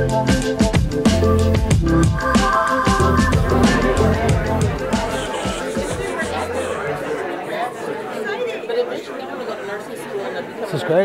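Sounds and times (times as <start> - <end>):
background music: 0.0 - 7.2
people chatting indistinctly: 0.9 - 11.0.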